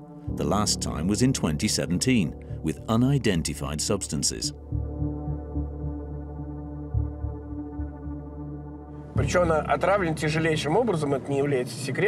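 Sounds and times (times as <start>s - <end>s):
soft low pulses: 0.0s - 10.6s
synthesizer drone: 0.0s - 10.8s.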